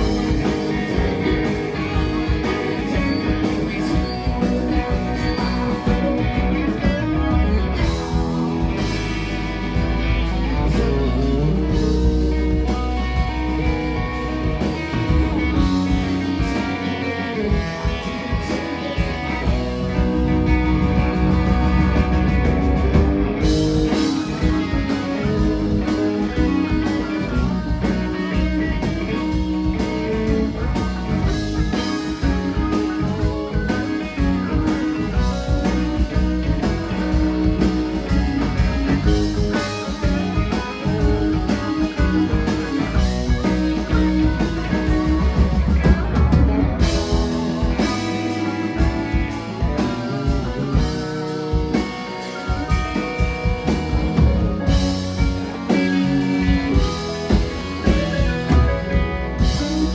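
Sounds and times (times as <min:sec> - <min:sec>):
drum kit: 0:00.0 - 0:59.9
electric guitars: 0:00.0 - 0:59.9
electric keyboard: 0:00.0 - 0:59.9.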